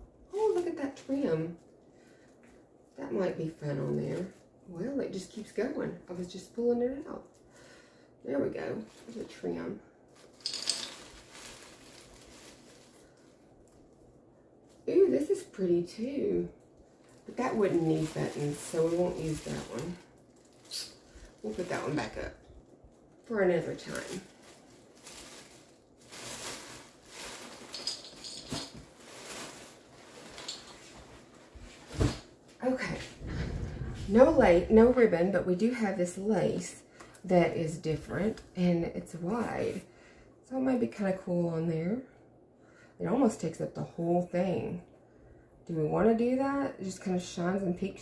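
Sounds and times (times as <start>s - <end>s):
rustling of craft materials: 0.2s - 5.4s, 8.6s - 39.9s
plastic bag crinkling: 8.8s - 9.5s, 10.1s - 14.9s, 16.6s - 32.3s.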